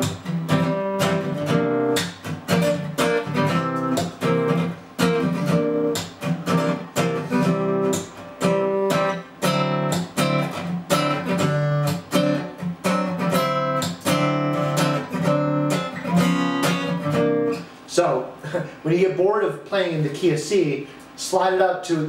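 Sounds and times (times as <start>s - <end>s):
acoustic guitar strummed funk rhythm: 0.0s - 18.8s.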